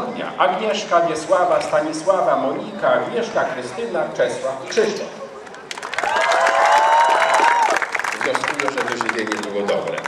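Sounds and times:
crowd applauding: 0:05.5 - 0:10.0.

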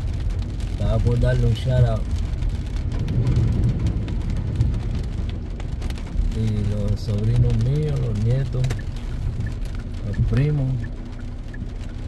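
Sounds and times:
car rumble from inside cabin: 0:00.0 - 0:12.0
rain ticking on windshield: 0:00.0 - 0:12.0.

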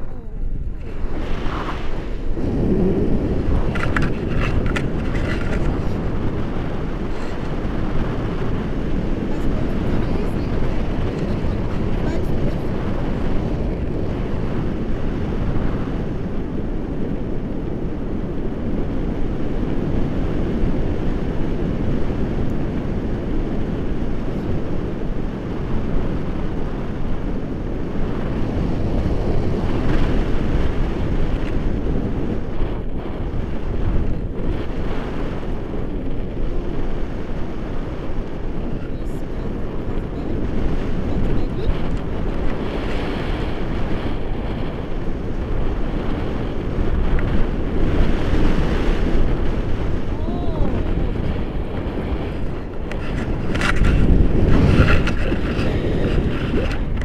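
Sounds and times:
wind noise on microphone: 0:00.0 - 0:57.0
brief crackles: 0:52.9 - 0:57.0.

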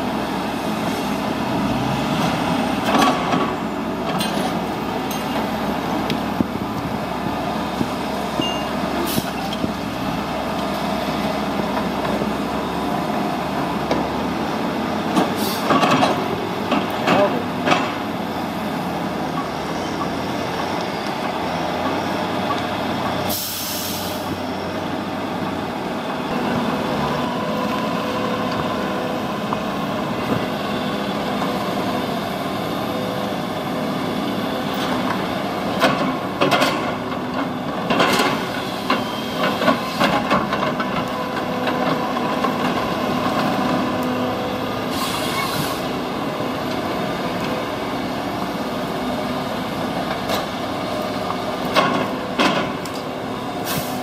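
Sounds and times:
diesel engine running under load: 0:00.0 - 0:54.0.

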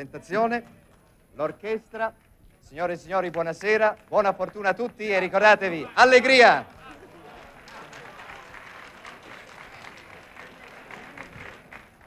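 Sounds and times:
crowd voices: 0:05.8 - 0:12.0
audience applauding: 0:06.4 - 0:12.0.

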